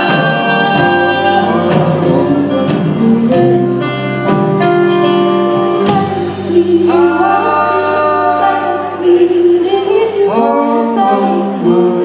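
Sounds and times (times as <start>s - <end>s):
voices singing in harmony: 0.0s - 3.8s, 5.8s - 12.0s
woman singing: 0.0s - 3.8s, 5.7s - 12.0s
band guitars: 0.0s - 12.0s.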